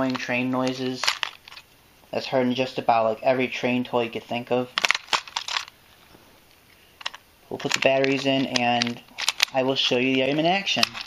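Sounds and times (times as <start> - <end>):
batteries and plastic clicking: 0.0 - 1.7, 4.7 - 5.8, 6.5 - 11.0.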